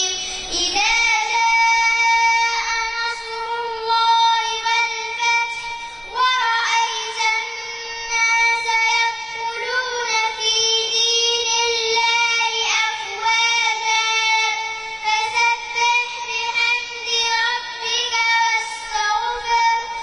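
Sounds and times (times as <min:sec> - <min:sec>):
girl chanting into microphone: 0:00.0 - 0:20.0.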